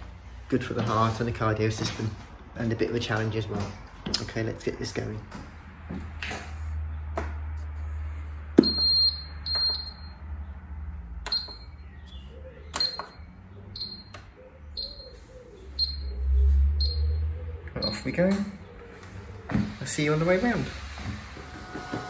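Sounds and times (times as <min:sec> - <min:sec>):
high-pitched console beeps: 0:15.8 - 0:16.1.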